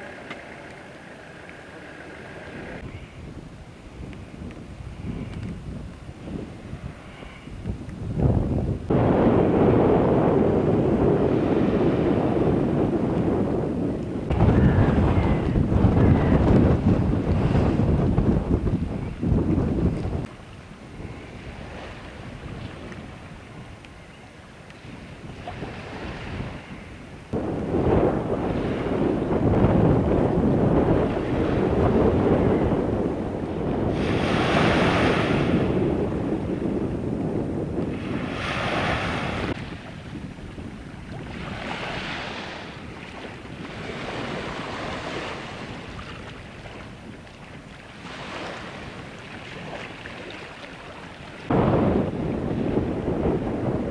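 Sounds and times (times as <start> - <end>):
rough floodwater: 0.0 - 53.9
wind buffeting microphone: 0.0 - 53.9
waves splashing onto bank: 4.1 - 53.9.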